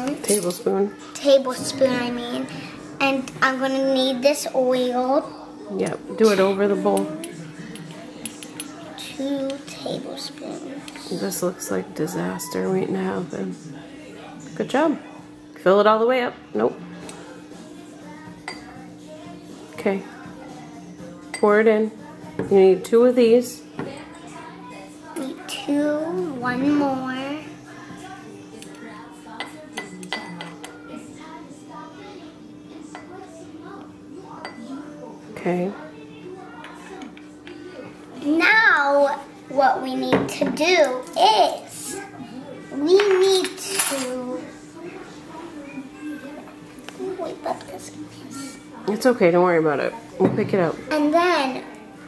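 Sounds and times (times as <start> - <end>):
metal spoon clinking on spout: 43.5 - 44.2.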